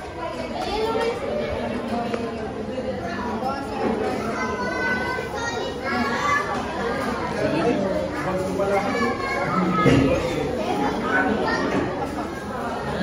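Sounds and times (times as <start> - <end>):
children's voices: 0.0 - 13.0
dining room chatter: 0.0 - 13.0.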